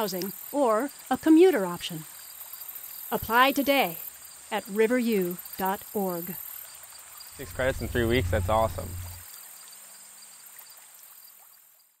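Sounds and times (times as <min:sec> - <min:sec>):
high-pitched insect chorus: 0:06.3 - 0:09.2.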